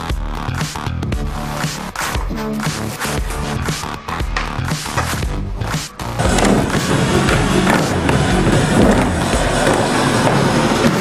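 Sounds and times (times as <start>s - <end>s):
background music: 0.0s - 11.0s
skateboard clacks: 6.2s - 11.0s
skateboard wheels rolling: 6.2s - 11.0s.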